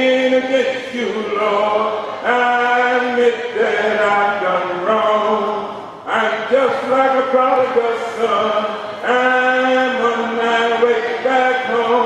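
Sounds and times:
man preaching in chanted cadence: 0.0 - 12.0.

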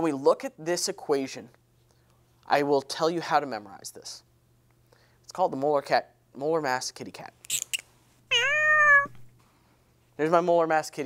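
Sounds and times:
cat meow: 8.3 - 9.3.

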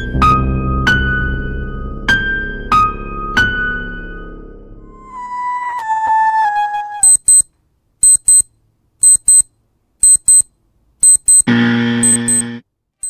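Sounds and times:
alarm clock double beeps: 7.0 - 12.6
low steady buzz: 10.6 - 12.6.

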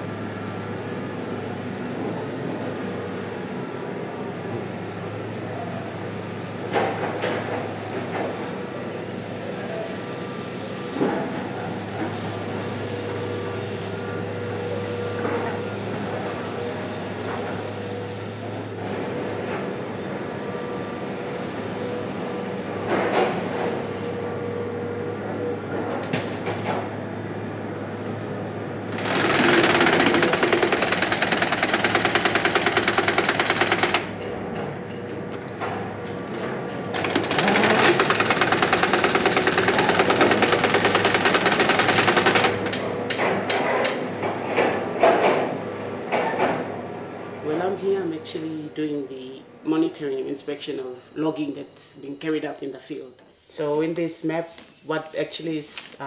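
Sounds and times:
steady machine hum: 7.8 - 44.3
pneumatic impact wrench rattling: 28.9 - 34.2, 36.9 - 42.8.

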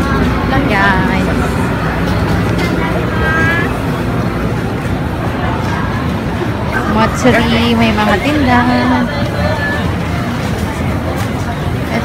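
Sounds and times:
background chatter: 0.0 - 12.0
crowd rumble: 0.0 - 12.0.

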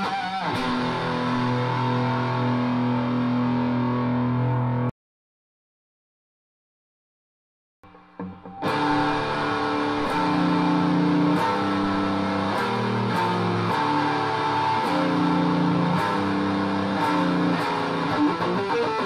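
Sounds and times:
distorted electric guitar riff: 0.0 - 4.9, 7.8 - 19.0.

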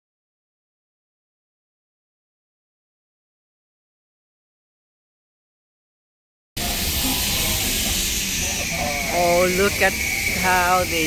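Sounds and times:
faint voices: 6.6 - 11.0
steady hiss: 6.6 - 11.0.

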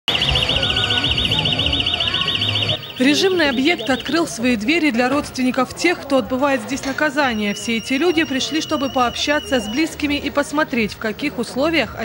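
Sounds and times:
high warbling alarm tone: 0.1 - 4.6, 7.2 - 10.2.

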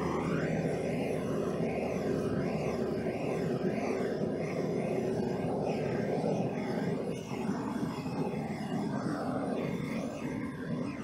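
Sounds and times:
gas torch hissing: 0.0 - 11.0.

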